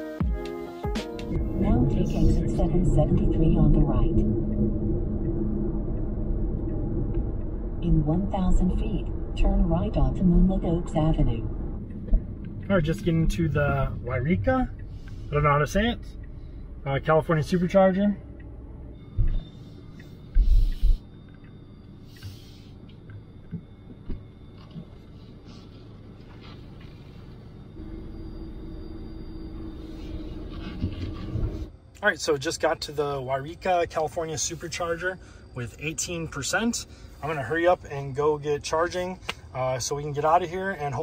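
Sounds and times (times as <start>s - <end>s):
deep thumps: 1.3s - 15.0s
road and tyre rumble in car: 1.3s - 41.0s.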